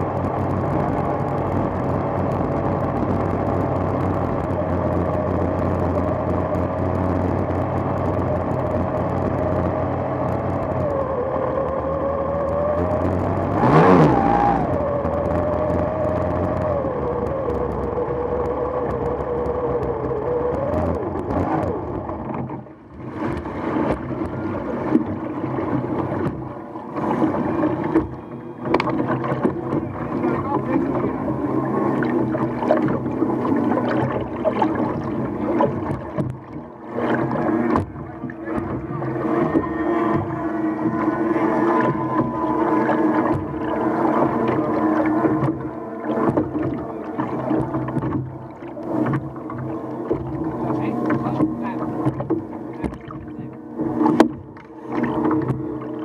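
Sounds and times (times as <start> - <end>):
outboard engine running slowly: 0.0 - 56.0
water splashing at hull: 0.0 - 56.0.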